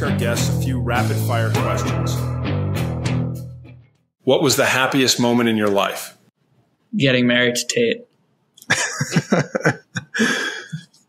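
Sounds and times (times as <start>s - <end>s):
man laughing: 8.6s - 11.0s.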